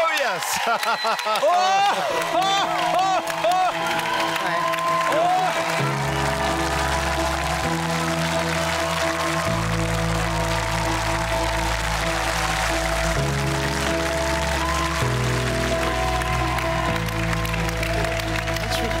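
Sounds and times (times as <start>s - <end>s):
audience applauding: 0.0s - 19.0s
music of sustained low chords: 4.6s - 19.0s.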